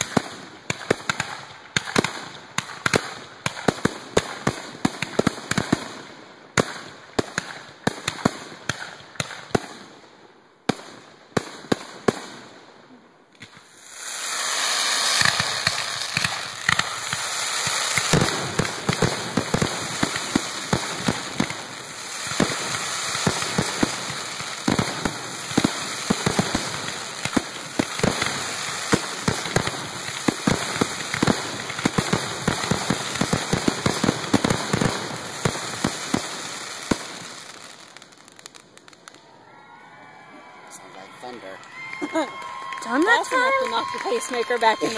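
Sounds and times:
firework shells bursting: 0:13.3 - 0:37.2.

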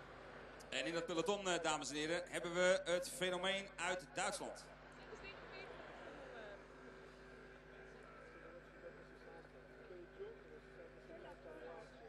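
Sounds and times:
faint indistinct voices: 0:00.0 - 0:12.0
faint steady hum: 0:00.0 - 0:12.0.

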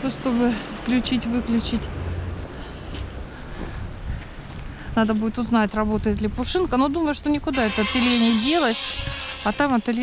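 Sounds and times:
wind on microphone: 0:03.5 - 0:10.0.

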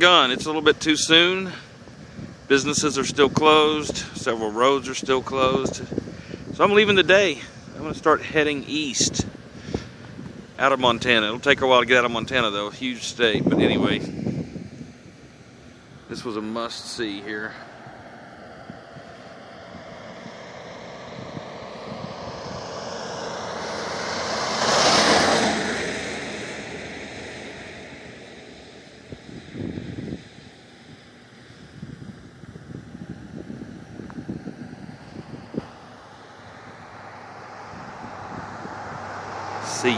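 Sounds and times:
vehicle passing on road: 0:00.0 - 0:39.9.

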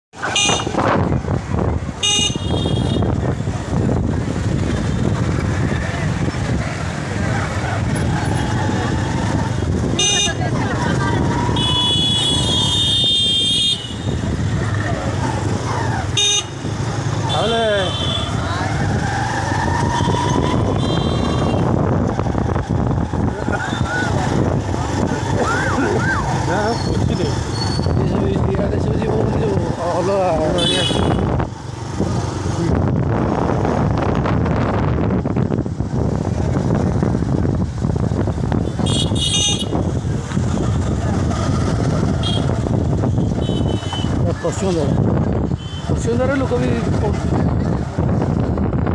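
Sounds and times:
vehicle engine and road noise: 0:00.1 - 0:48.9
vehicle horns tooting: 0:00.2 - 0:00.9, 0:02.0 - 0:03.2, 0:09.9 - 0:10.6, 0:11.2 - 0:14.3, 0:16.1 - 0:18.5, 0:19.8 - 0:21.8, 0:30.4 - 0:31.4, 0:38.6 - 0:40.0, 0:42.2 - 0:44.2, 0:45.4 - 0:46.1.

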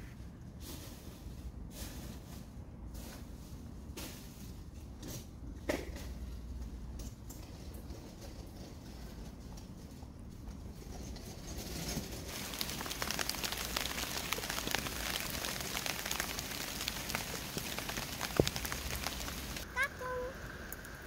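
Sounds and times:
rain falling: 0:12.1 - 0:21.0.

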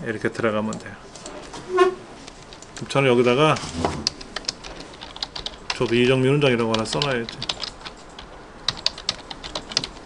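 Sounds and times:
keyboard key clicks: 0:06.6 - 0:10.0.

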